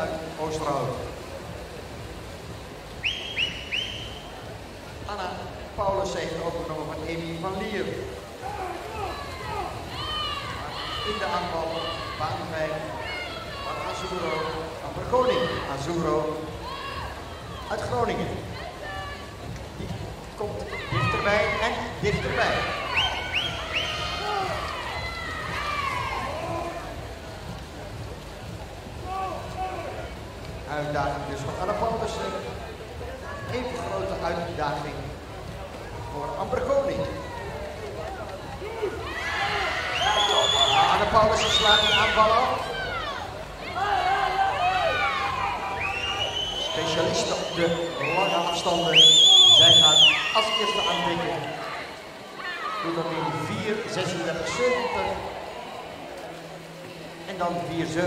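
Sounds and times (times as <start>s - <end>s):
crowd noise: 0.0s - 58.0s
splashing water: 0.0s - 58.0s.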